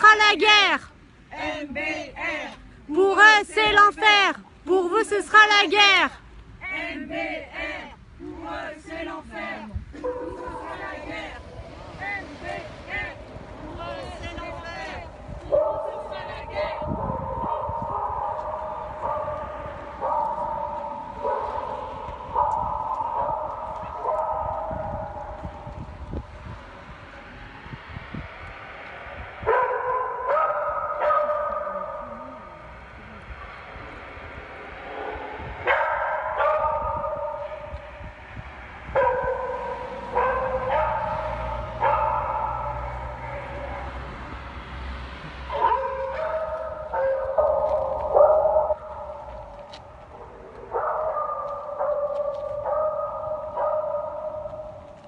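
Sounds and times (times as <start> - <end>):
dogs howling and baying: 29.4 - 32.5, 45.5 - 49.3, 50.1 - 54.8.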